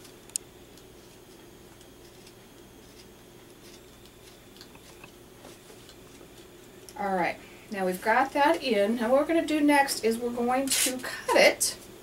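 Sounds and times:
stylus scratching metal foil: 2.0s - 4.4s.

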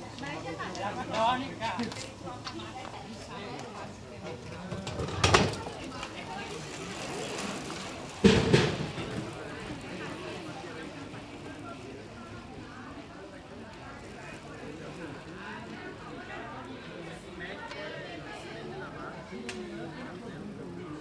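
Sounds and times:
indistinct voices of bystanders: 0.0s - 21.0s.

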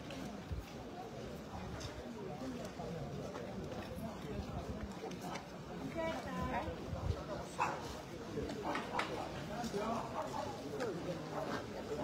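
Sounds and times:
indistinct crowd voices: 0.0s - 12.0s.

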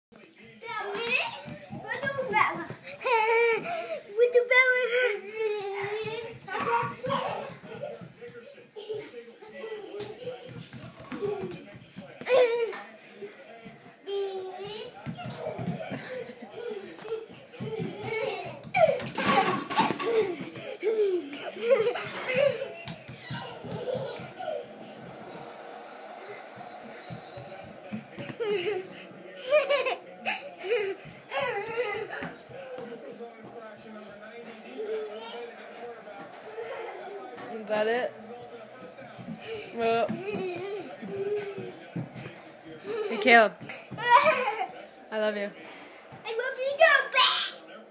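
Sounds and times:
children laughing and squealing: 14.1s - 33.3s.

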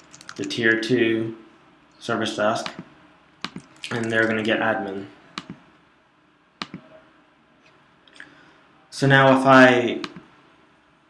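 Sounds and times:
computer mouse clicks: 3.4s - 4.4s, 5.4s - 5.6s, 6.6s - 6.8s.

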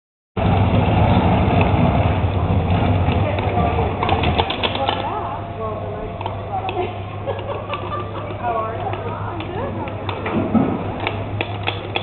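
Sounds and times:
truck engine rumbling: 0.4s - 12.0s
voices: 2.3s - 12.0s.

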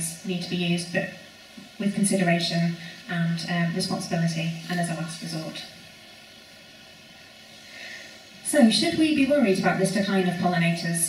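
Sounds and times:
faint steady room hiss: 0.0s - 11.0s.

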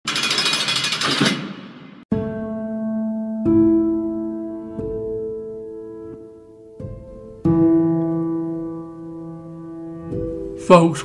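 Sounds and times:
loud rapid hammer-like rattling: 0.1s - 2.0s.

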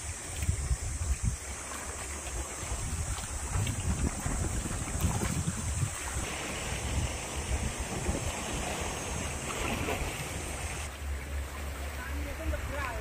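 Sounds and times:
wind buffeting microphone: 0.0s - 10.9s
seawater washing against rocks: 0.0s - 13.0s.

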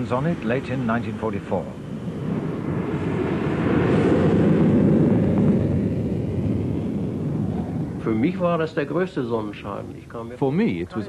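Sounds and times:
jet engine rushing roar: 0.0s - 10.9s.

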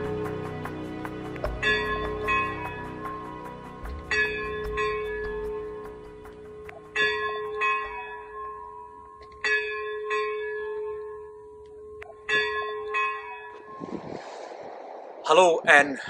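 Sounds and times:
church bell ringing: 1.6s - 3.3s, 4.1s - 13.8s
wind noise: 13.5s - 16.0s.

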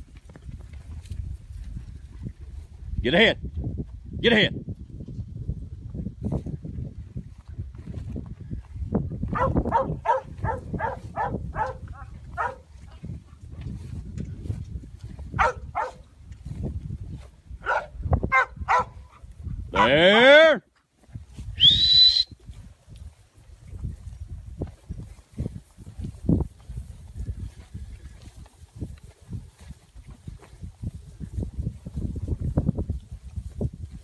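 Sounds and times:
dog barking in short bursts: 9.3s - 12.6s, 15.4s - 16.0s, 17.6s - 19.0s
person calling out: 19.8s - 20.6s
sharp rising whistle: 21.6s - 22.3s.

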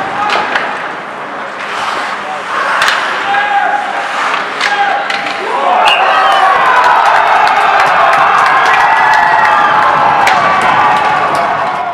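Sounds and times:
crowd cheering and shouting: 4.6s - 11.9s.

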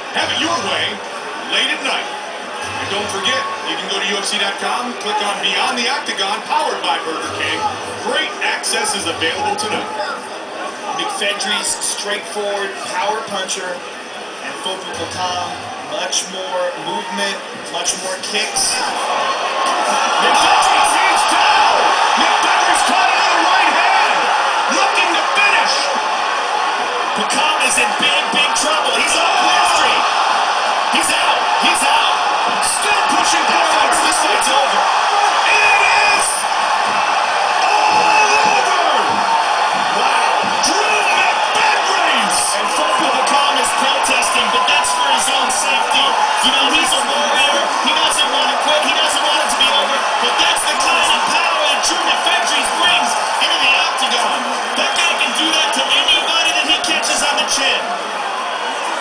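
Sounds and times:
crowd cheering and yelling: 0.0s - 59.0s.

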